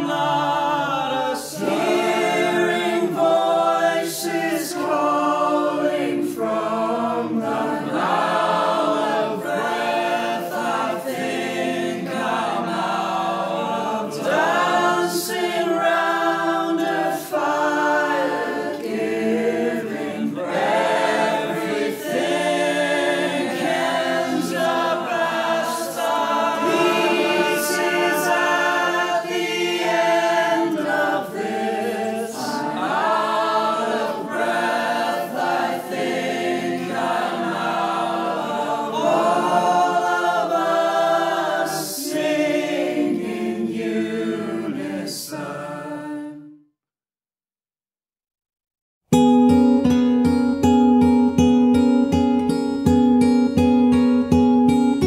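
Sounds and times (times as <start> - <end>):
choir singing in harmony: 0.0 - 46.6.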